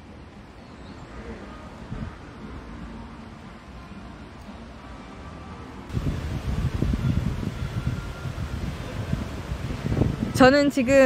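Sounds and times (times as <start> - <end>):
steady outdoor hiss: 0.0 - 11.0
wind buffeting microphone: 5.9 - 11.0.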